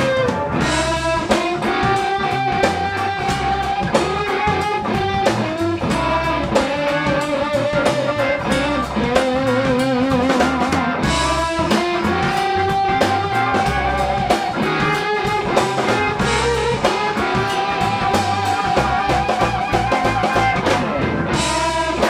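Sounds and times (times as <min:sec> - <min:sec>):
drum kit: 0:00.0 - 0:22.0
electric bass: 0:00.0 - 0:22.0
electric guitar lead: 0:00.0 - 0:22.0
hammond organ: 0:00.0 - 0:22.0.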